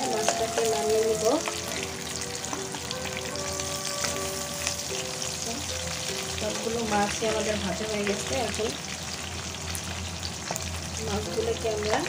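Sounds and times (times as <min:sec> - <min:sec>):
fish sizzling in hot oil: 0:00.0 - 0:12.0.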